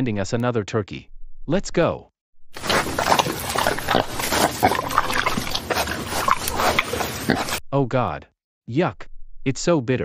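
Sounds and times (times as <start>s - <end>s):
cartoon chewing and chomping: 2.6s - 7.6s.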